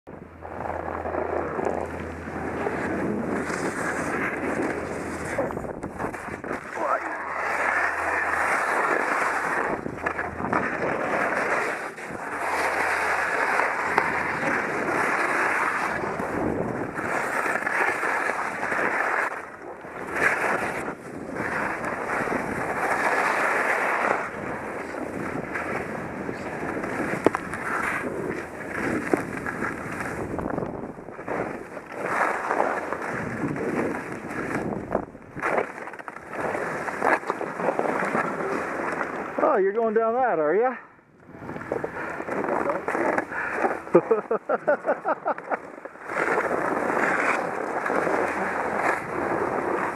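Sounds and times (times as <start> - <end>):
wind buffeting microphone: 0.1 - 17.2, 24.3 - 31.5, 33.1 - 35.4
skis scraping over snow: 0.4 - 49.9.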